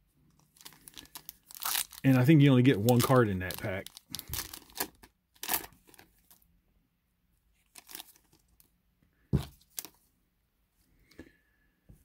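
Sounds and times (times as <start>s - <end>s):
foil wrapper tearing and crinkling: 0.6s - 6.1s, 7.8s - 8.3s.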